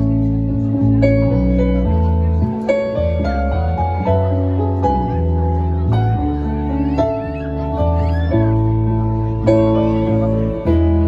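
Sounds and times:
electric bass: 0.0s - 11.0s
keyboard chords: 0.0s - 11.0s.

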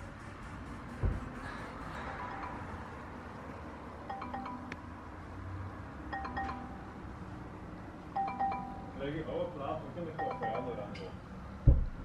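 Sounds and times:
soft electronic chime notes: 10.2s - 10.9s.

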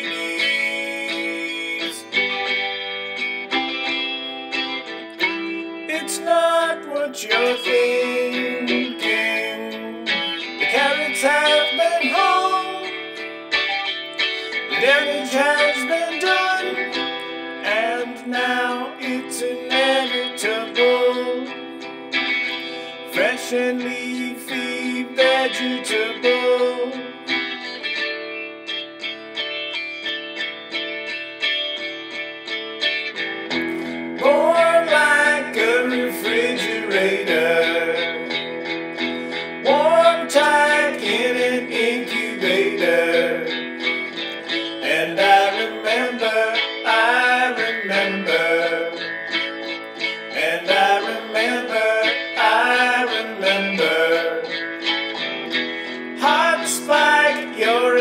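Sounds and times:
bass guitar: 0.0s - 58.0s
lead guitar bending notes: 0.0s - 58.0s
strummed guitar chords: 0.0s - 58.0s.

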